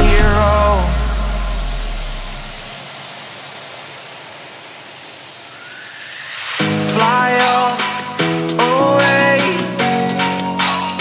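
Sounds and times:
deep bass note: 0.0 - 2.7
white-noise sweep: 0.0 - 10.0.

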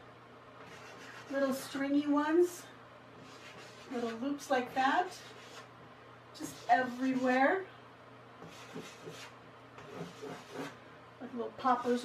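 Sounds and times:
chalk scratching on chalkboard: 0.6 - 1.8, 3.2 - 5.7, 6.4 - 7.5, 8.4 - 10.8, 11.6 - 12.0.

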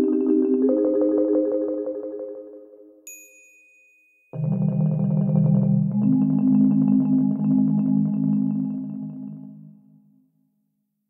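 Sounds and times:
rolled marimba chord: 0.0 - 2.9, 4.4 - 9.7
high metallic ding: 3.1 - 4.4.

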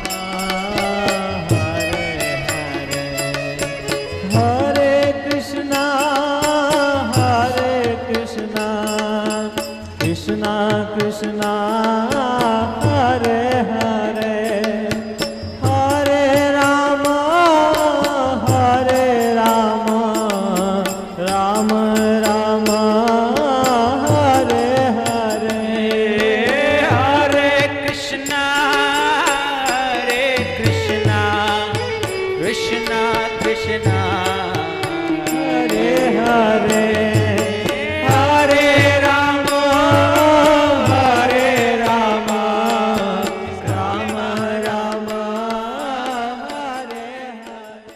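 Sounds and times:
devotional chanted singing: 0.0 - 47.9
percussion beat: 0.0 - 47.9.

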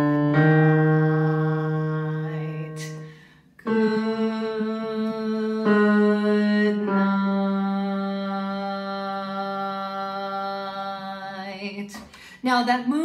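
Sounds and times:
woman singing long note: 0.0 - 11.9
speech: 8.8 - 13.0.

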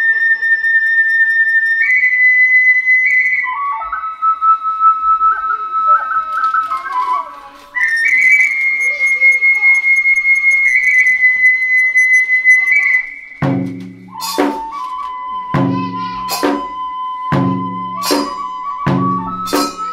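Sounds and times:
solo side-blown flute melody: 0.0 - 19.9.

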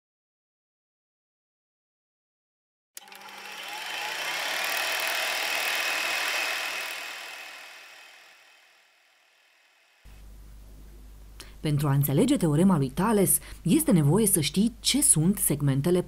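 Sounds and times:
noisy intro swell: 3.1 - 10.0.

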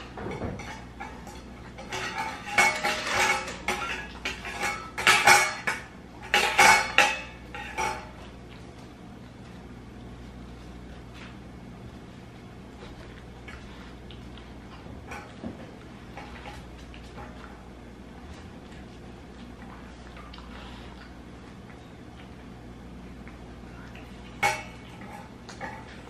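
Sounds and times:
metal dog bowl clinking: 0.2 - 8.2.

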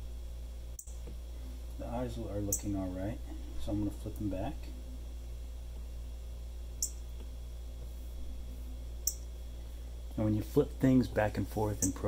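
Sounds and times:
low hum: 0.0 - 12.0
stylus tapping glass screen: 6.8 - 7.3.

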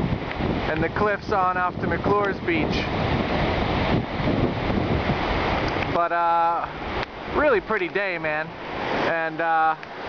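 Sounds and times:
ocean surf on beach: 0.0 - 10.0
wind buffeting microphone: 0.0 - 10.0.

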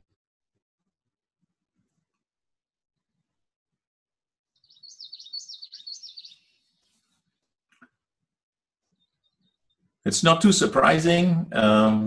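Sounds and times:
bird singing: 4.5 - 7.4, 8.8 - 10.0.

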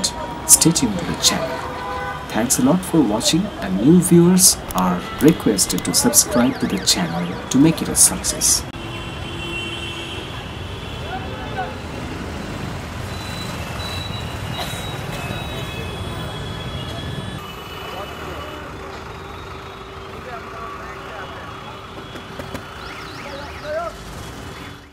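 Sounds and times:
indistinct crowd voices: 0.0 - 8.7
cars and buses running: 0.0 - 24.9.

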